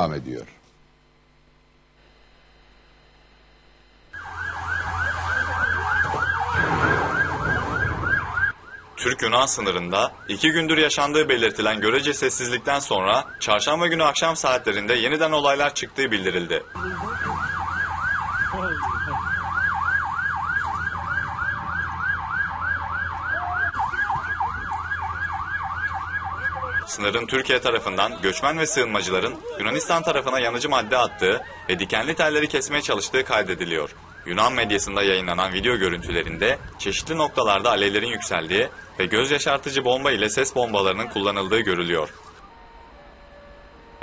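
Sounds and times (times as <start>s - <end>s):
siren yelping: 4.2s - 14.5s, 16.2s - 44.0s.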